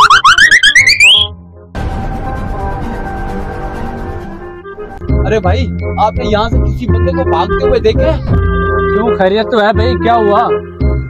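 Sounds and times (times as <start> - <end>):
rising warbling cartoon whistle: 0.0 - 1.3
background music: 0.0 - 11.0.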